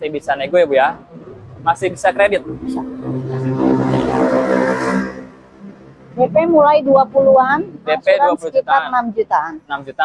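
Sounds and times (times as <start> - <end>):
vehicle engine droning: 0.0 - 8.2.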